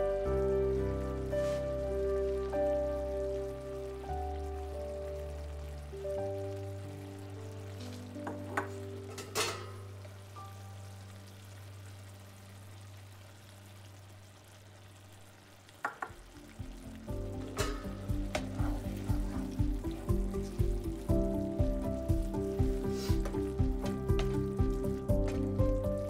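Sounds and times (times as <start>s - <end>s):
background music: 0.0s - 12.5s, 16.1s - 26.0s
mixture sizzling in a hot pan: 0.0s - 26.0s.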